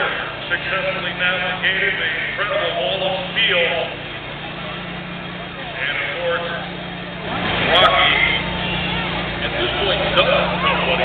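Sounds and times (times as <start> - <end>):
car engine idling: 0.0 - 11.0
indistinct voices: 0.0 - 11.0.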